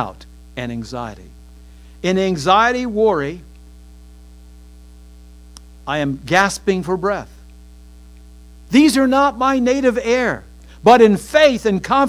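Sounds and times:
man's voice: 0.0 - 1.3, 2.0 - 3.4, 5.9 - 7.4, 8.7 - 12.0
electrical mains hum: 0.0 - 12.0
faint click: 5.5 - 5.7.

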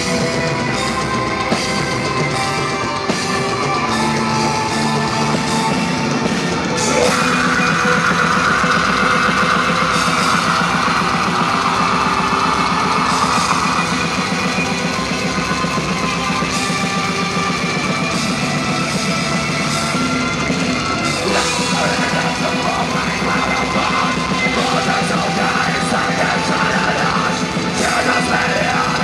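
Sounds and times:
metal band playing live: 0.0 - 29.0.

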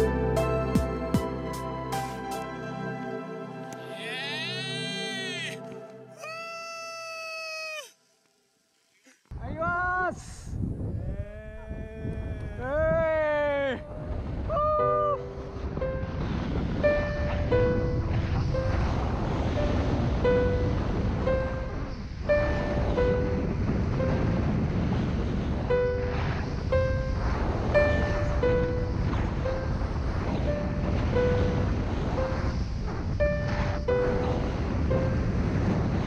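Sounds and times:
held music notes: 0.0 - 6.2
wind rushing on microphone: 9.3 - 36.0.

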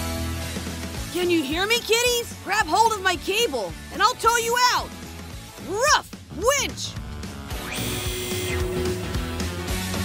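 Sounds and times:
background music: 0.0 - 10.0
cartoon winch whir: 7.5 - 9.7
steady hum: 7.7 - 9.6.

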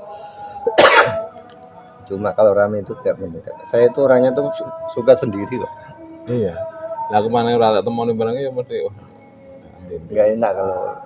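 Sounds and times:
person coughing: 0.7 - 1.2.

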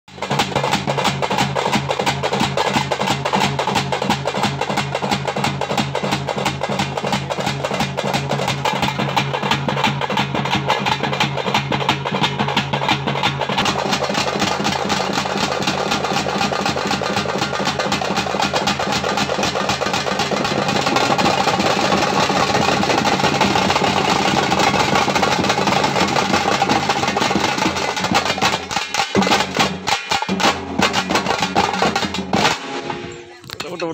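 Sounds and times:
drum troupe drumming: 0.1 - 33.9.

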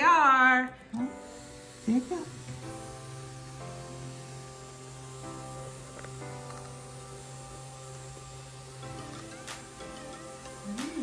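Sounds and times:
background music with sustained chords: 0.9 - 11.0
small electric motor humming: 0.9 - 11.0.

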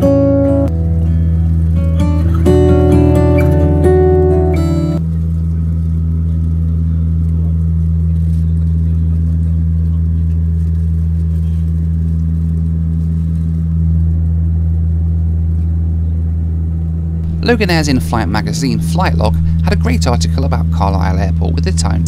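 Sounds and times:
turboprop engines droning: 13.4 - 22.0.

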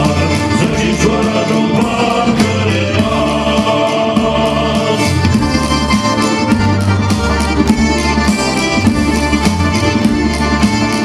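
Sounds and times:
male vocal group singing: 0.0 - 5.7.

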